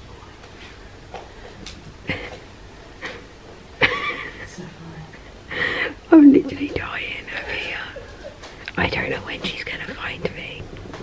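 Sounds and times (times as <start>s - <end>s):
woman whispering: 6.3s - 8.0s, 8.7s - 10.6s.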